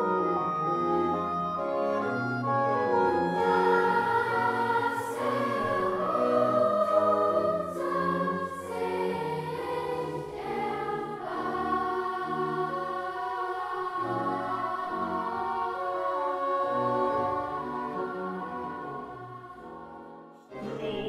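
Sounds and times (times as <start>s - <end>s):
instrumental accompaniment with bass: 0.0s - 8.1s
choir singing sustained chords: 0.0s - 21.0s.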